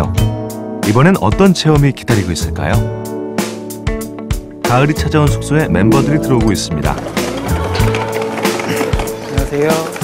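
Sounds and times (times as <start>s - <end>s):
background music with steady beat: 5.2s - 7.6s.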